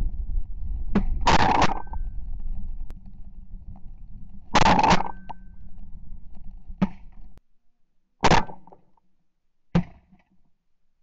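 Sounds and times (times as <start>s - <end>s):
low wind rumble on microphone: 0.0s - 7.4s.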